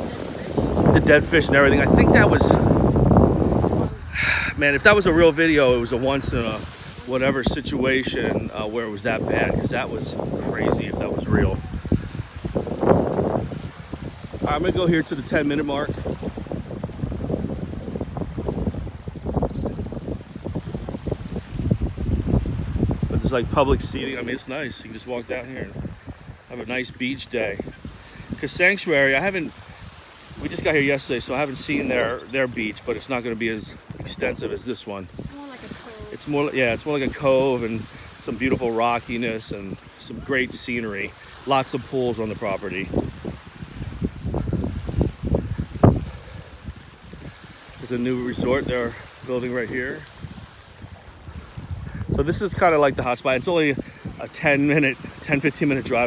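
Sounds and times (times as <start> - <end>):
small waves washing onto shore: 0.0 - 56.0
wind buffeting microphone: 0.0 - 56.0.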